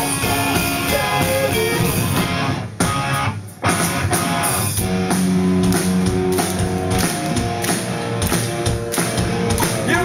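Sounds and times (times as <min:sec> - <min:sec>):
rock band playing: 0:00.0 - 0:10.0.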